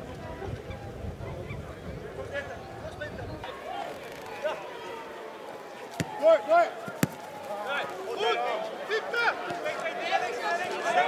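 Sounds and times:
players shouting and calling: 0:01.4 - 0:11.0.

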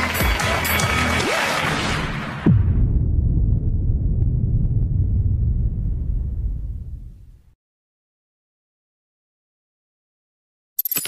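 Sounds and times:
deep low rumble: 0:02.5 - 0:07.6.

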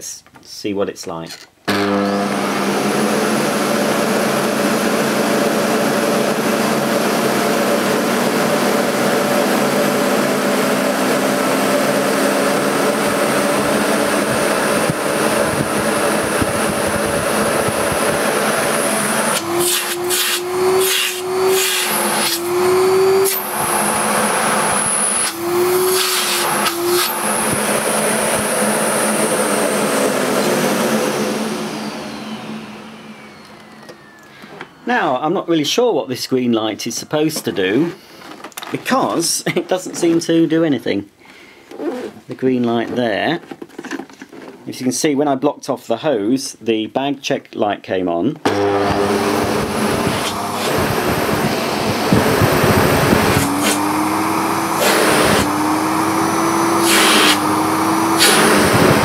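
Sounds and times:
vacuum cleaner motor running: 0:01.7 - 0:35.1, 0:48.4 - 0:59.0.

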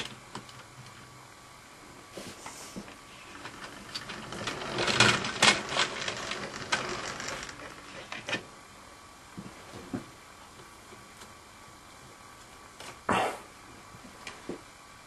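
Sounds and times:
mechanical clicking and rattling: 0:03.2 - 0:08.4.

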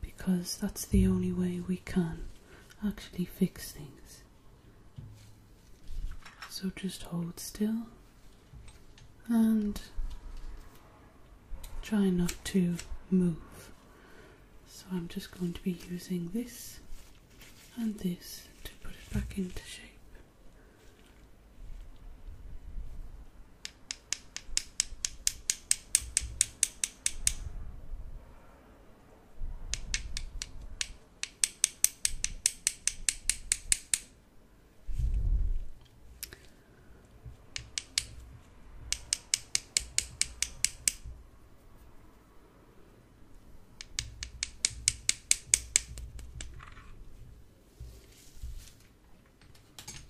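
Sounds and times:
scissors snipping: 0:37.5 - 0:38.1, 0:38.8 - 0:41.0.

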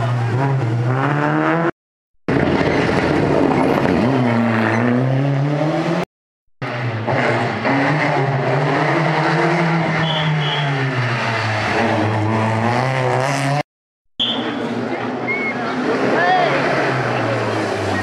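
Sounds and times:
rally car engine revving: 0:00.0 - 0:13.7, 0:14.3 - 0:18.0.

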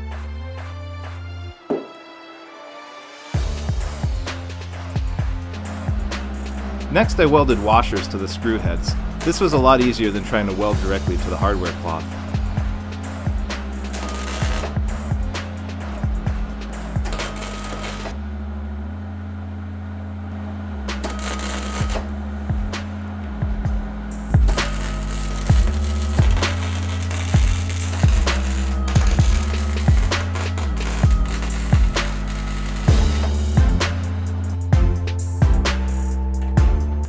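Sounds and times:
steady bass line: 0:03.4 - 0:37.0
drum beat: 0:08.6 - 0:17.3, 0:23.4 - 0:32.2, 0:32.8 - 0:34.1.

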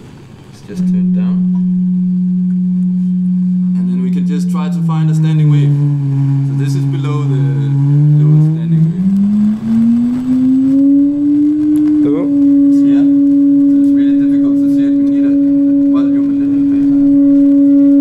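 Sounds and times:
electronic test tone gliding up: 0:00.6 - 0:18.0.

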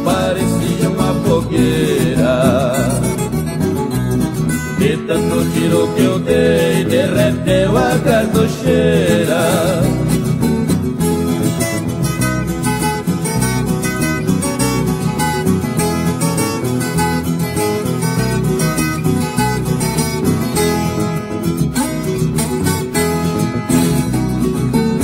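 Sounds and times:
acoustic guitar accompaniment: 0:00.0 - 0:25.0.

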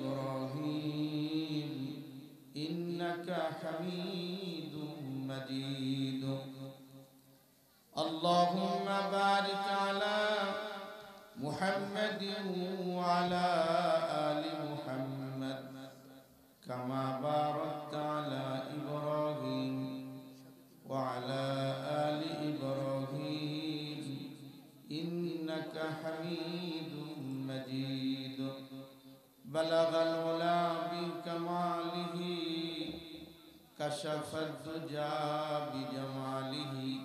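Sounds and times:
man chanting melodically: 0:00.0 - 0:07.2, 0:07.9 - 0:37.0
breaths: 0:07.2 - 0:07.9, 0:16.0 - 0:16.6, 0:28.8 - 0:29.4.

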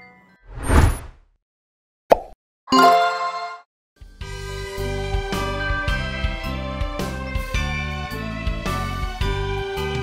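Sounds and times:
whoosh: 0:00.5 - 0:01.2
bright ringing chord: 0:02.7 - 0:03.6.

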